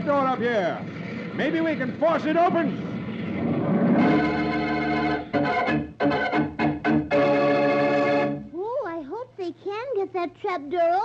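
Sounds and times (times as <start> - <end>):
organ chords: 1.3 - 8.5.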